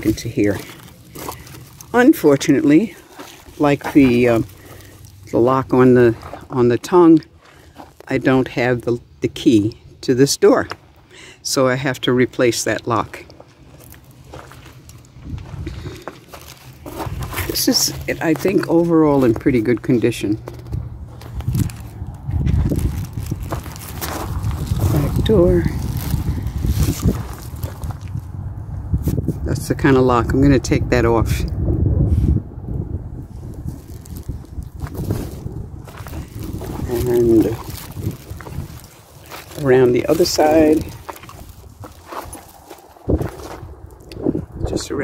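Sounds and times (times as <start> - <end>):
footsteps on gravel: 0.0 - 9.0, 12.7 - 28.4, 33.4 - 44.3
wind rumbling on microphone: 15.1 - 45.0.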